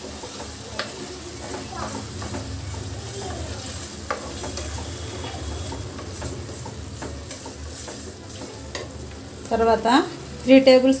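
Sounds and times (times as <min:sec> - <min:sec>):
spatula scraping and tapping pan: 0:00.0 - 0:10.2
tomatoes sizzling in oil: 0:00.0 - 0:11.0.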